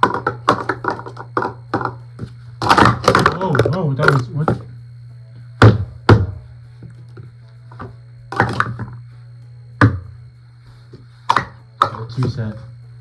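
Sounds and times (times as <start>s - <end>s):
plastic cups clacking on a mat: 0.0s - 4.7s, 7.2s - 9.0s, 11.2s - 12.4s.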